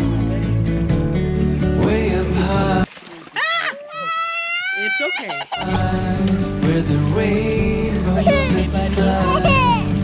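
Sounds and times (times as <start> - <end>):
music: 0.0 - 2.9, 5.6 - 10.0.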